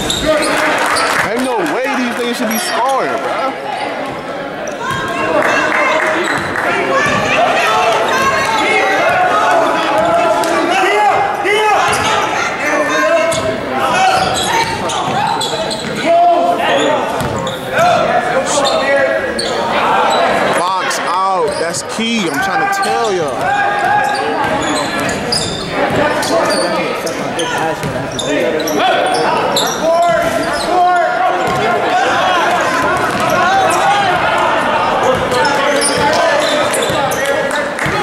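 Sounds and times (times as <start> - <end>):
people shouting in echoing hall: 4.6 - 21.6, 22.2 - 27.8, 28.6 - 38.0.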